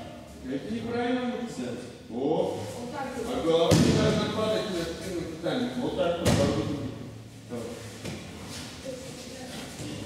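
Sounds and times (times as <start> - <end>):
thud on a judo mat: 3.7 - 4.2.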